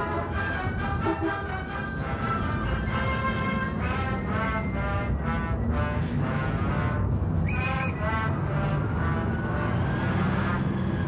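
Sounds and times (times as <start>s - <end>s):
background music: 0.0s - 11.0s
bus engine: 0.0s - 11.0s
street traffic: 0.0s - 11.0s.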